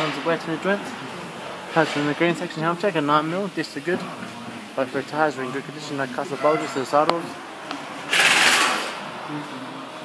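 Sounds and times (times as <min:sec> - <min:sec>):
compressed air hissing: 0:08.1 - 0:09.0.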